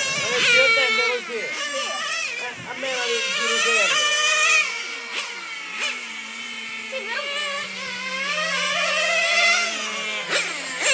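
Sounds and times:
high-revving nitro engine whine: 0.0s - 10.9s.

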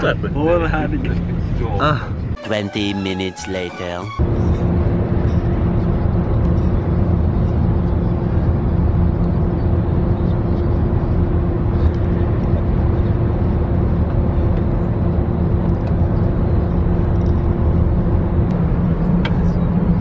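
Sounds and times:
bus interior rumble: 0.0s - 20.0s
constant hum: 3.6s - 20.0s.

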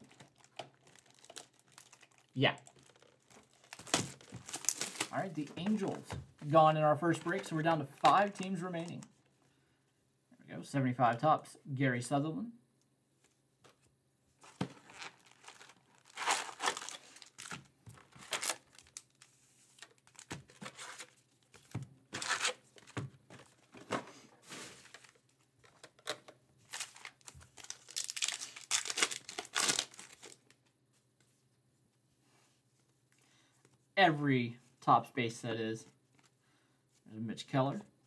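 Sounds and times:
card pack wrappers tearing and crinkling: 0.0s - 6.0s, 14.4s - 22.9s, 24.5s - 30.6s.

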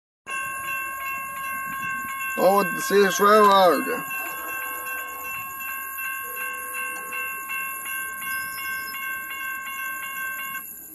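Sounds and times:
railroad crossing bell ringing: 0.3s - 10.9s.

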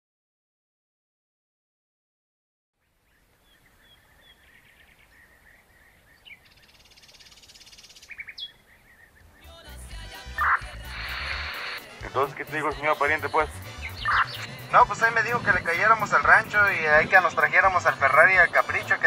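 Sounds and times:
birds chirping: 2.8s - 19.0s
faint outdoor ambience: 2.8s - 19.0s
music with low pulsing beat: 9.7s - 19.0s
buzzy trill: 10.2s - 14.8s.

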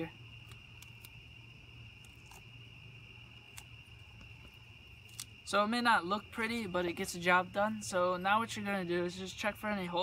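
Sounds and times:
cricket trill: 0.0s - 10.0s.

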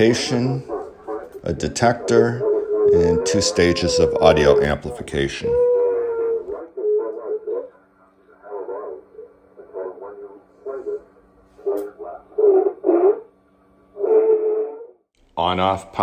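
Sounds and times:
radio voice from loudspeaker: 0.0s - 5.7s, 8.0s - 12.3s
steady hum: 0.0s - 14.6s.

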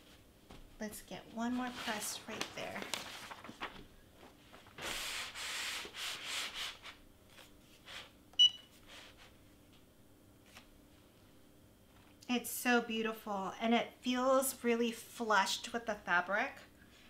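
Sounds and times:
hands rubbing a sheet: 1.4s - 3.6s.

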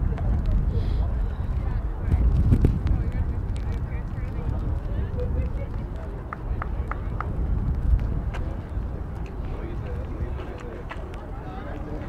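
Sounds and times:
distant indistinct voices: 0.0s - 12.0s
wind rumble on microphone: 0.0s - 12.0s.

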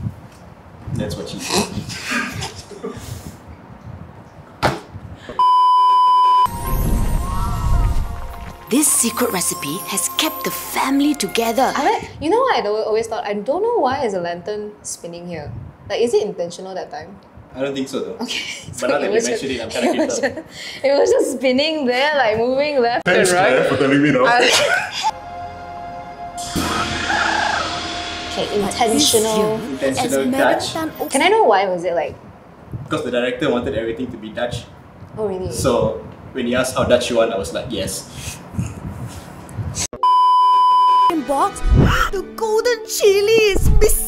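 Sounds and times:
censor bleep: 5.4s - 8.0s, 40.0s - 41.2s
deep rumble: 6.5s - 9.4s, 26.4s - 31.1s
film soundtrack music: 6.5s - 12.1s, 25.1s - 31.2s, 41.1s - 44.0s.

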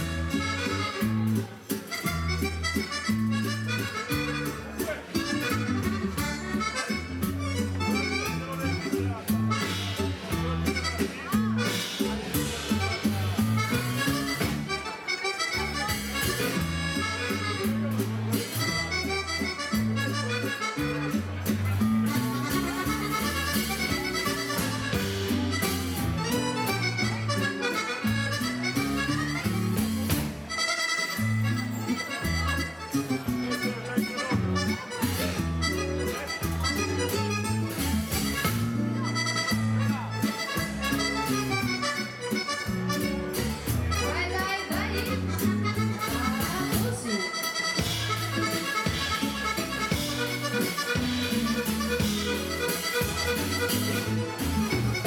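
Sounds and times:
dance band playing: 0.0s - 55.0s
fast accordion runs: 22.1s - 55.0s.

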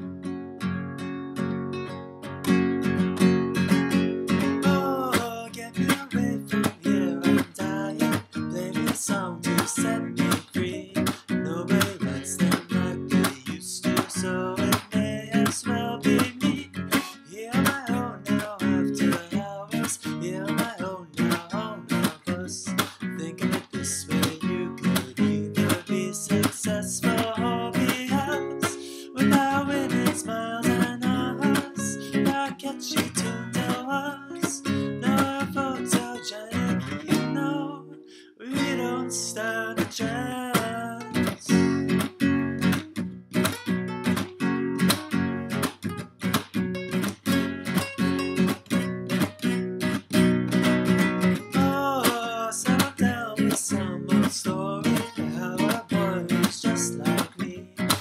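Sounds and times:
classical guitar strumming chords: 0.0s - 58.0s.

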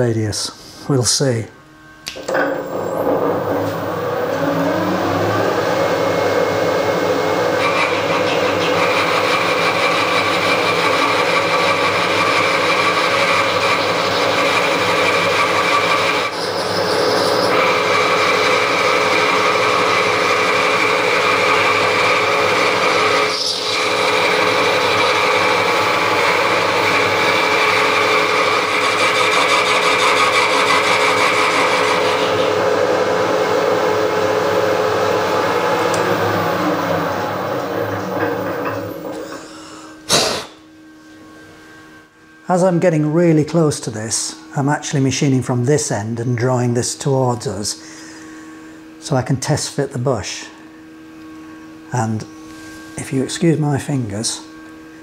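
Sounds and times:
high cutting whine: 0.0s - 55.0s
milling machine hum: 0.0s - 55.0s.

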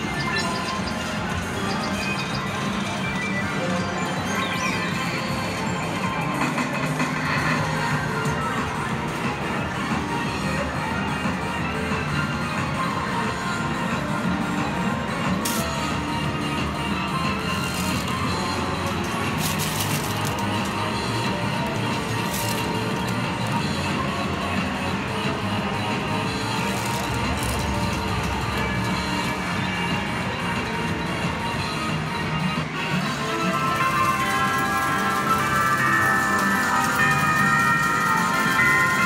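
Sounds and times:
arcade music: 0.0s - 39.0s
electronic game sounds: 0.0s - 39.0s.

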